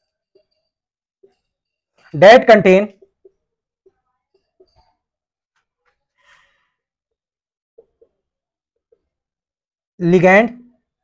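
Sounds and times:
faint breath out: 6.1 - 7.0.

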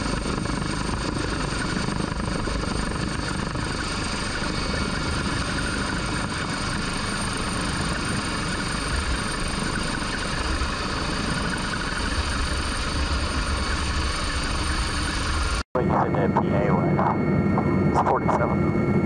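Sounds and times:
helicopter rotor and engine noise: 0.0 - 19.0.

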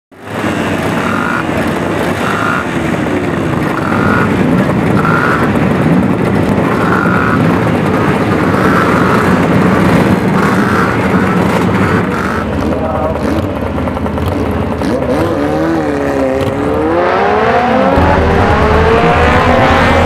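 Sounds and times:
racing motorcycle engines revving: 0.2 - 20.0.

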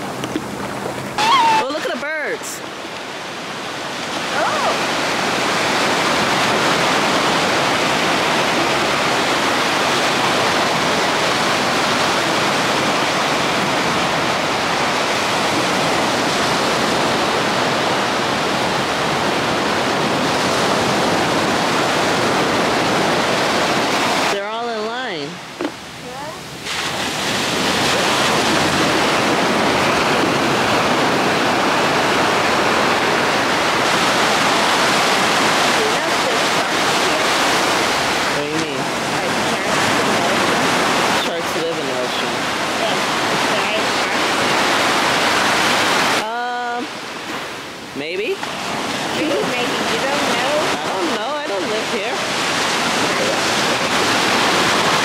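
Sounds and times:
ocean surf breaking on shore: 0.0 - 55.0.

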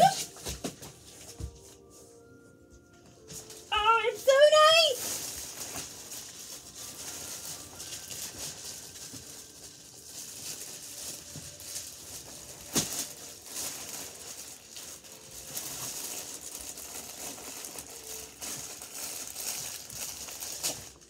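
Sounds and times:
plastic wrapping crinkling: 0.0 - 21.0.

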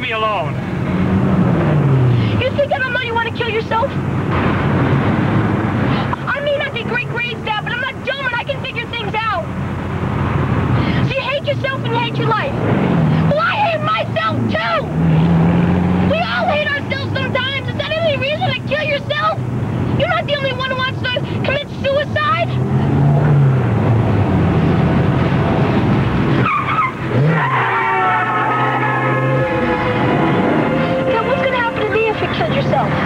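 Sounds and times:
car engine and road noise: 0.0 - 33.0
voices: 2.2 - 4.0, 5.9 - 9.6, 10.8 - 15.0, 16.0 - 22.9, 26.4 - 33.0.

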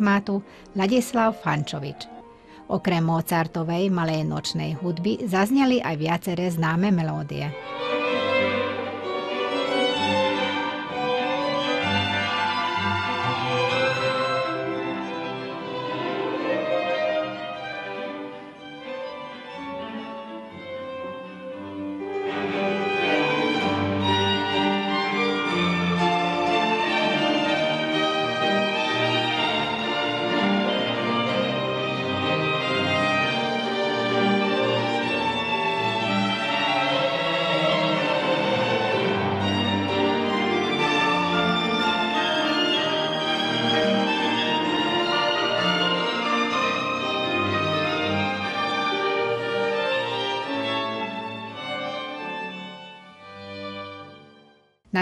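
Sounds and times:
string ensemble playing classical music: 0.0 - 55.0.

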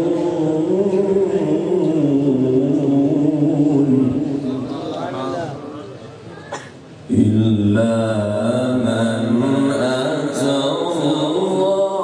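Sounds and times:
man reciting melodically: 0.0 - 5.7, 7.1 - 12.0.

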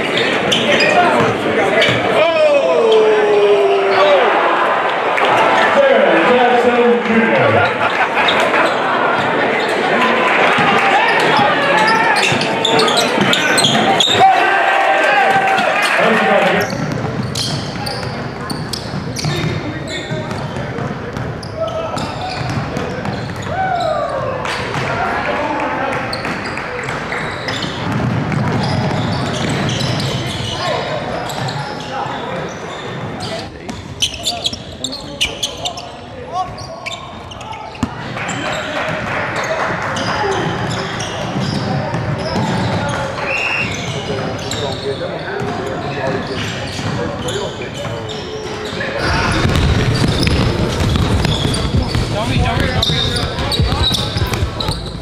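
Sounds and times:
echoing voices in a hall: 0.0 - 55.0
basketball bouncing on hardwood: 49.4 - 55.0.

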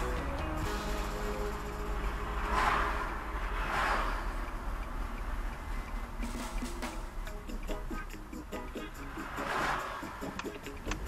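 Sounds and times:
car road and engine rumble: 0.0 - 11.0
vehicles passing: 0.0 - 11.0.

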